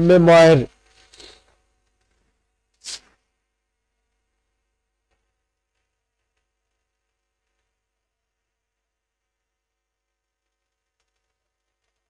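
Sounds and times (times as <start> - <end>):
marker strokes on a whiteboard: 2.8 - 3.2.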